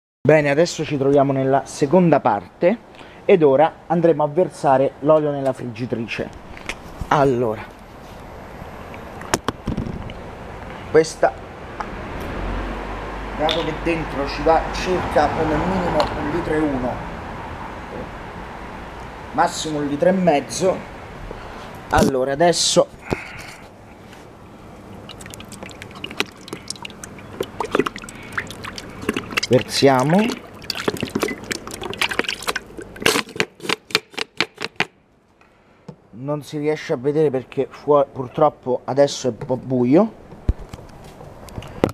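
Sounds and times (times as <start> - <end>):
low background noise: 0.2 - 41.9
oil bottle glugging and clicking: 24.9 - 34.9.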